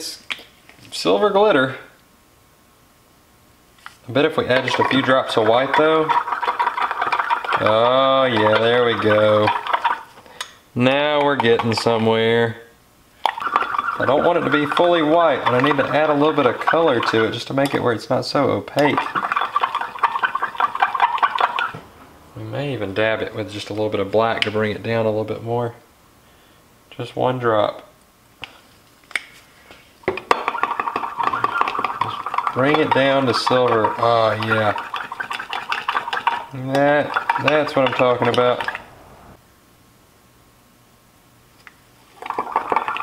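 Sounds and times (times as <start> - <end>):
metal spoon scraping glass: 4.4 - 10.1, 13.3 - 17.4, 18.8 - 21.8, 30.2 - 38.9.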